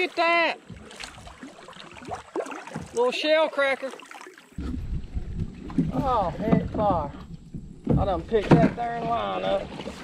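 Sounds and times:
water rumbling: 0.0s - 10.0s
wind noise on camera: 4.6s - 8.9s.

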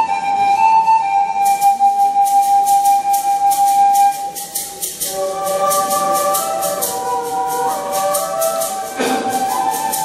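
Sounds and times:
nose flute note: 0.0s - 10.0s
rattle shaking: 1.4s - 10.0s.

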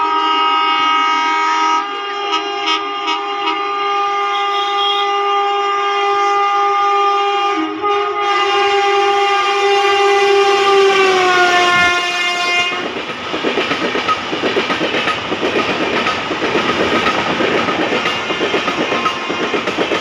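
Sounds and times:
train horn blast: 0.0s - 13.0s
train wheels clattering over rail joints: 11.4s - 20.0s.

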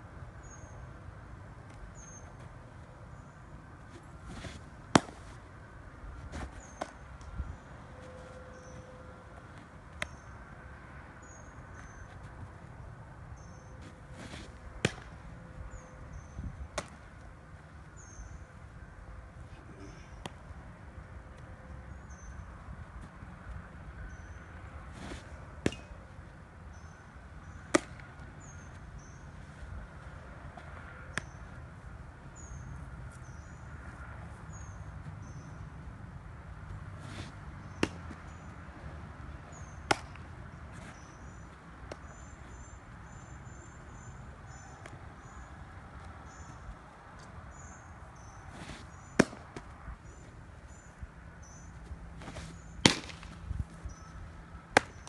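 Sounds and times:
baseballs popping into gloves: 3.8s - 5.4s, 6.3s - 7.4s, 14.2s - 15.2s, 16.7s - 17.3s, 20.2s - 20.5s, 25.0s - 26.0s, 27.6s - 28.9s, 30.6s - 31.4s, 37.1s - 38.4s, 39.6s - 41.1s, 41.8s - 42.3s, 48.6s - 49.8s, 51.8s - 53.8s, 54.7s - 55.0s.

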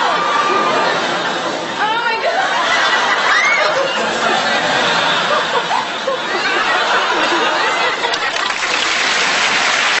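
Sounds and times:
audience applause: 6.5s - 10.0s.

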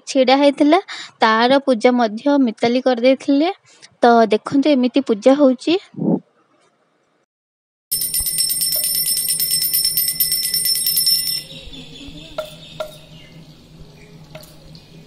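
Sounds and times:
small hand bell ringing rapidly: 7.9s - 13.1s.

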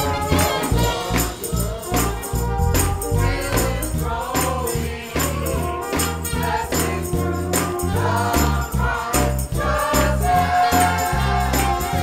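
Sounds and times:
sustained bass notes: 0.0s - 9.7s
choir singing a hymn: 0.0s - 12.0s
even percussion beat: 0.0s - 12.0s
instrumental accompaniment: 0.0s - 12.0s.

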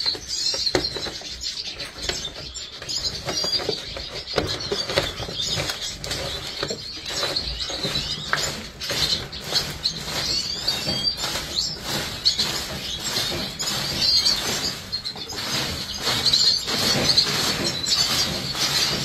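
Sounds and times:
birds fluttering in cage: 0.0s - 19.0s
seed husks clicking and rustling: 0.0s - 19.0s
small birds chirping: 0.0s - 19.0s.

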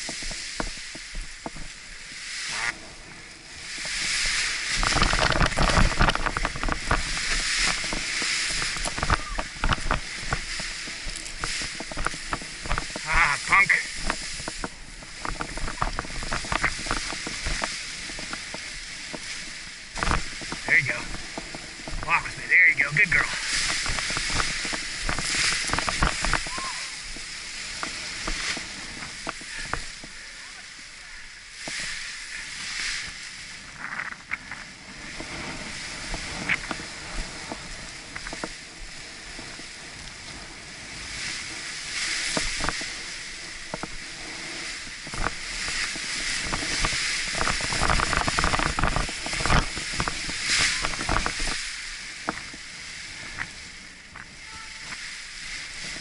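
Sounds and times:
paraglider canopy rustling: 0.0s - 56.0s
wind gusts on microphone: 0.0s - 56.0s.

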